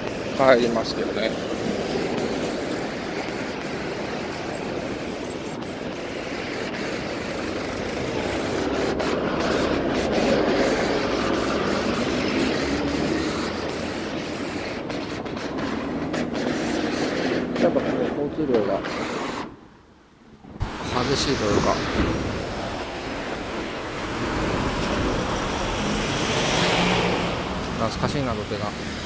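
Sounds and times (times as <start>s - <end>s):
road traffic rumbling: 0.0s - 29.0s.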